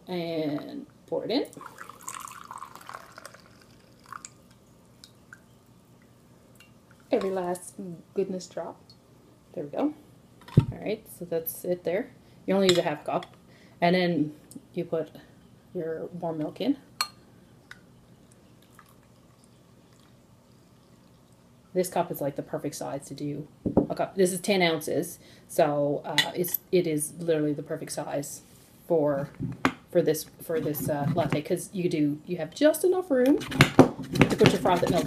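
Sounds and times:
milk trickling into a mug: 0:01.5 - 0:05.5, 0:17.7 - 0:21.7
tea pouring into glass cup: 0:01.5 - 0:05.5, 0:18.2 - 0:21.6
tea dripping: 0:01.5 - 0:07.2, 0:17.0 - 0:21.8
tiny drip-like ticks: 0:04.0 - 0:07.1.

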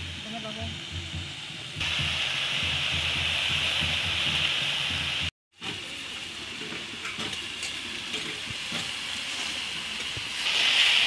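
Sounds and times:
vegetables sizzling in a wok: 0:00.0 - 0:11.0.

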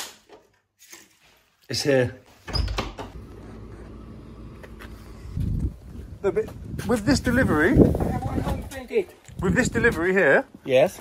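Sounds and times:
vehicle engine idling: 0:03.2 - 0:06.2.

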